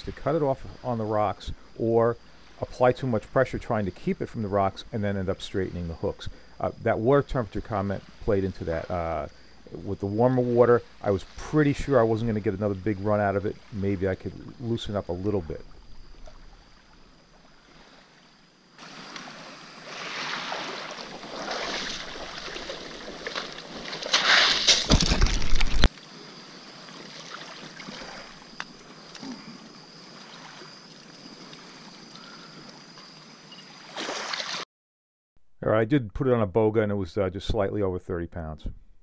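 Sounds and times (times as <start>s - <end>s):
faint high whine: 0.0s - 34.6s
surf water sloshing: 18.8s - 25.9s, 26.8s - 28.6s.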